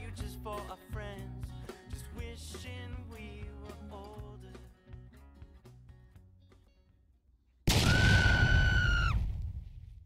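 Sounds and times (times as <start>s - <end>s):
background music: 0.0s - 7.0s.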